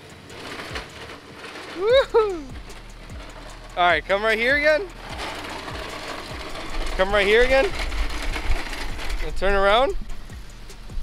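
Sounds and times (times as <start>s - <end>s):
electric cart rattling on asphalt: 0.0s - 11.0s.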